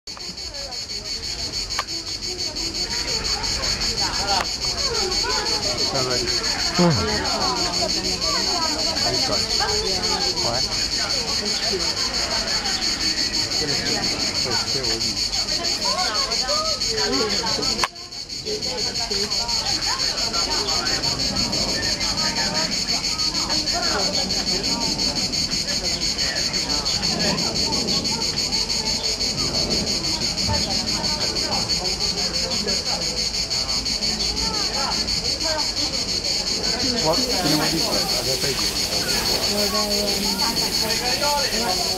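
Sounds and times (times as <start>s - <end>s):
insects chirping chorus: 0.1s - 41.9s
people talking: 0.1s - 41.9s.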